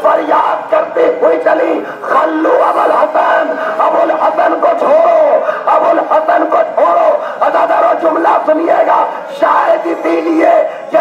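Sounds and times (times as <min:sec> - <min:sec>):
congregation weeping and crying out: 0:00.0 - 0:11.0.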